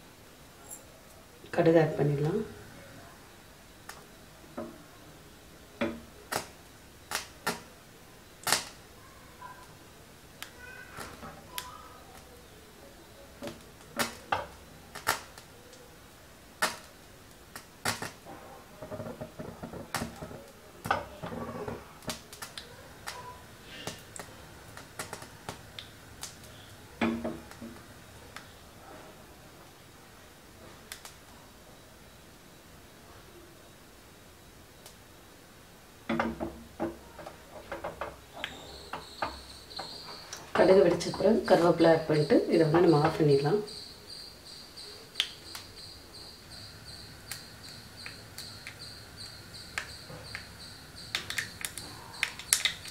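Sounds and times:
hot oil crackling and popping: 3.3s - 28.8s, 29.4s - 31.4s, 34.7s - 52.9s.

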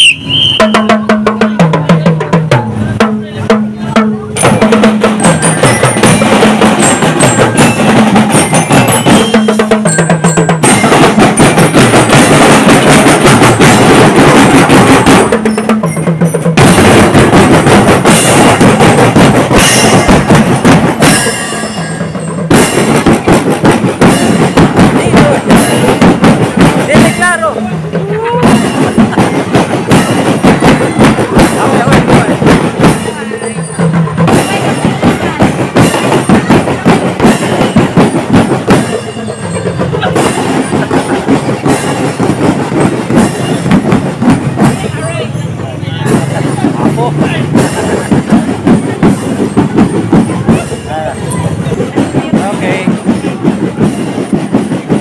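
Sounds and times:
marching drum corps playing: 0.0s - 55.0s.

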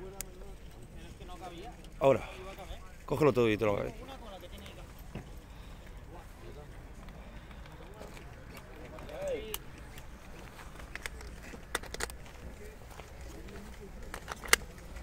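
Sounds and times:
plastic clicks of pistol and holster: 7.0s - 12.6s, 13.4s - 15.0s.

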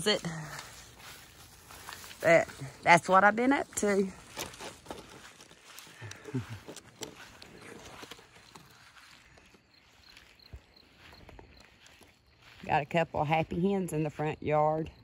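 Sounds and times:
footsteps through grass: 0.0s - 14.3s.

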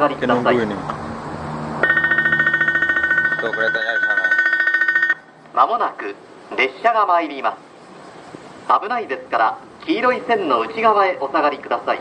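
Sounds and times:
railway warning bell ringing: 1.8s - 5.4s.

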